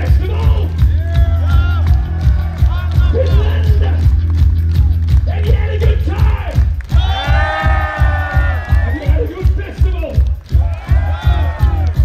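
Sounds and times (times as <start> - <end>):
heavy kick drum and bass beat: 0.0 - 12.0.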